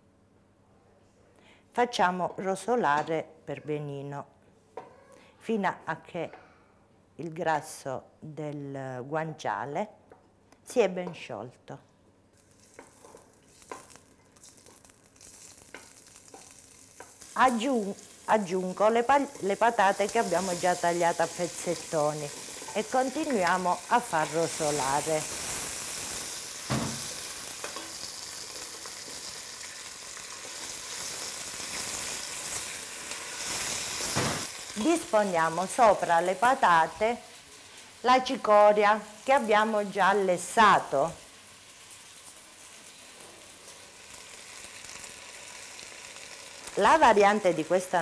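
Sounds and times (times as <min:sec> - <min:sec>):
onion frying in oil: 0:12.3 - 0:48.0.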